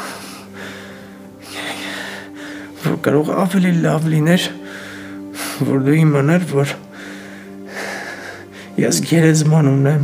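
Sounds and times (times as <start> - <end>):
soft background music: 0.0 - 10.0
man speaking tearfully: 8.7 - 10.0.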